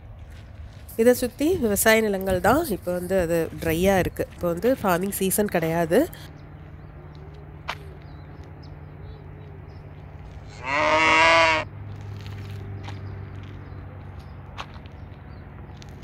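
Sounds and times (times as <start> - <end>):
cow mooing: 10.4 - 11.7.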